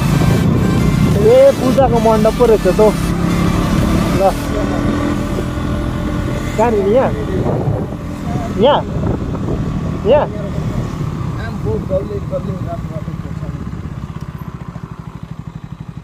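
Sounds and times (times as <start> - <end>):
wind noise on microphone: 0.0 - 1.4, 4.7 - 11.5
motorcycle engine rumbling: 0.0 - 16.0
person speaking: 3.8 - 5.6.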